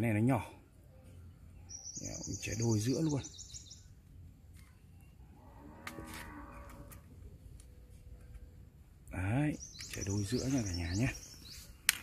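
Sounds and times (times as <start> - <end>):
cow mooing: 5.4 - 7.0.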